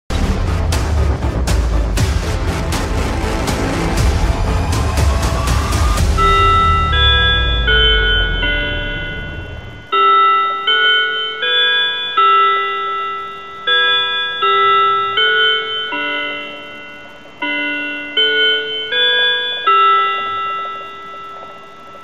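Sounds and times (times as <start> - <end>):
clock chimes: 4.7 - 22.0.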